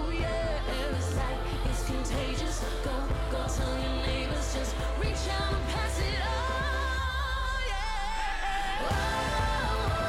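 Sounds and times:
pop song with bass beat: 0.0 - 10.0.

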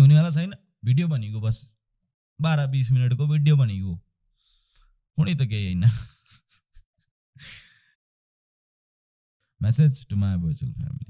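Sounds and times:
man sighing: 7.4 - 7.8.

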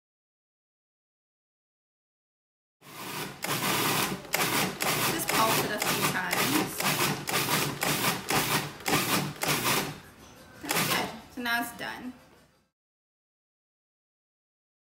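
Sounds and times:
food processor chopping in bursts: 2.8 - 10.0, 10.6 - 11.2.

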